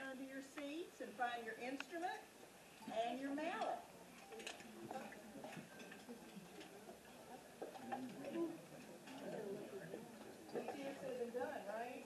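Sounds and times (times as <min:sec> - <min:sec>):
murmur of audience chatter: 0:02.2 - 0:12.0.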